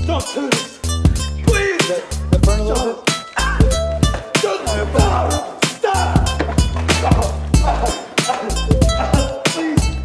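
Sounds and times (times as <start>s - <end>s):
hip-hop beat drums: 0.0s - 10.0s
deep bass line: 0.9s - 8.0s, 8.6s - 10.0s.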